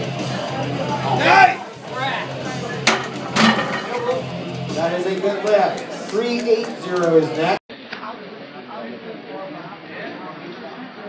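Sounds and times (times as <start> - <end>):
background rock music: 0.0 - 5.1.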